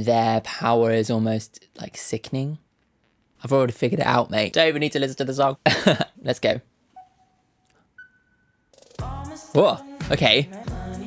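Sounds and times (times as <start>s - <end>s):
music: 8.0s - 11.0s.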